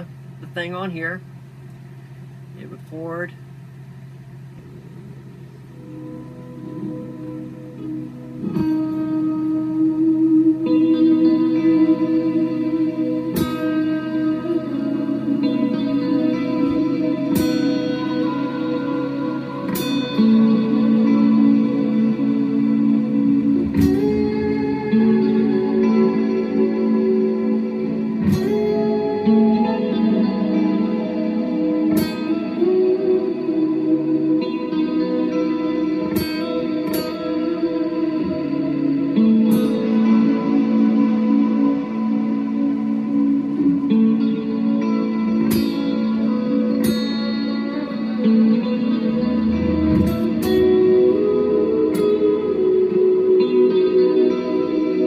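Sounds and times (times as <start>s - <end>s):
ambient electric guitar notes: 0.0s - 55.0s
sharply picked guitar notes: 4.5s - 55.0s.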